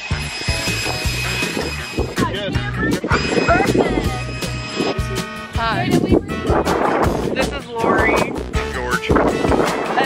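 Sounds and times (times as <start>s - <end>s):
music with pulsing bass beat: 0.0s - 10.0s.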